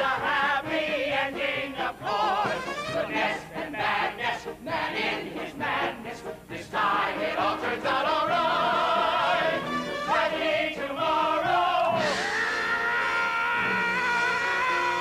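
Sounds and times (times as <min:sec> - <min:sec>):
pit orchestra: 0:00.1 - 0:15.0.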